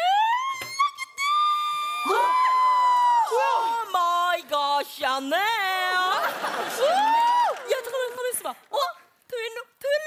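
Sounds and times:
women squealing: 0.0s - 3.8s.

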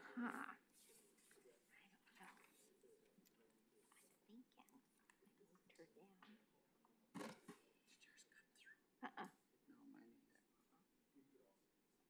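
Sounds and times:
faint whispering: 0.0s - 6.7s, 7.5s - 11.6s.

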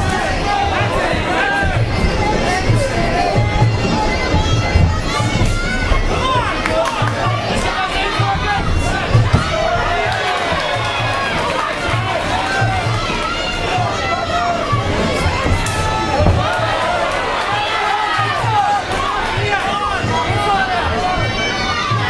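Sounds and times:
crowd shouting: 0.0s - 22.0s
steady drum beat: 0.0s - 22.0s.

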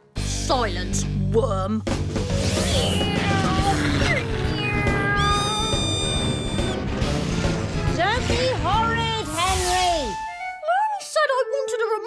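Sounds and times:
cartoon background music: 0.2s - 12.0s
high whine: 5.2s - 7.0s.

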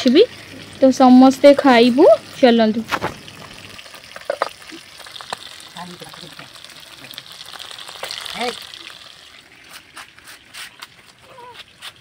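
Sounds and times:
fish sizzling in hot oil: 0.0s - 12.0s.

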